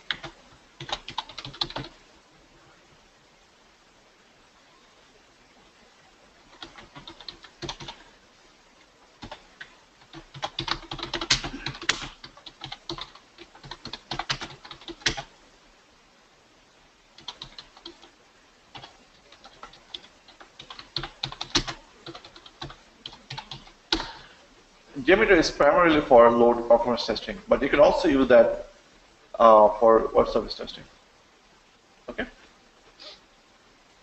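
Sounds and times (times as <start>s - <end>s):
typing on computer keyboard: 0.1s - 2.0s, 6.5s - 8.0s, 9.2s - 15.3s, 17.2s - 18.1s, 18.7s - 24.1s.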